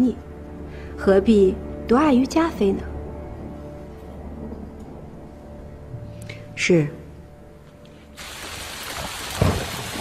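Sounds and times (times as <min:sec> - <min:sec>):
steady rainfall: 0:08.2 - 0:10.0.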